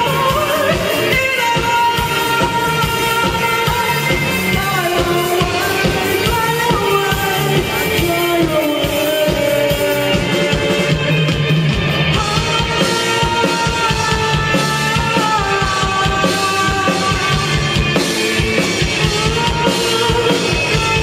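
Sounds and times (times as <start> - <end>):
male singer: 0.0 - 11.0, 12.2 - 17.8, 19.0 - 21.0
live rock band: 0.0 - 21.0.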